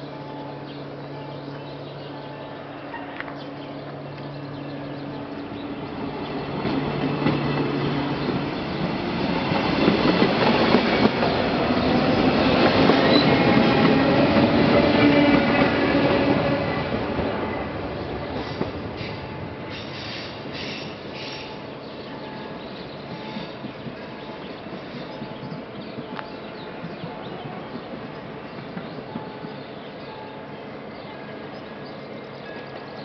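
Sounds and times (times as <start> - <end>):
electric train passing: 0.0 - 33.0
rail noise: 0.0 - 33.0.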